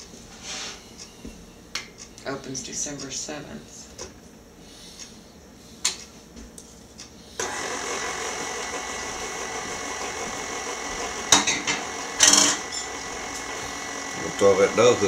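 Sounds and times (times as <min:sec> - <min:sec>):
stand mixer motor running: 0:07.4 - 0:15.0.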